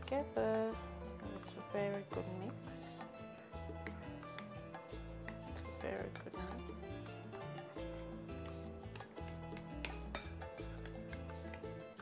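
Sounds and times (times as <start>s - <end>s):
background music with bass line: 0.0s - 12.0s
metal spoon scraping glass bowl: 9.8s - 10.5s.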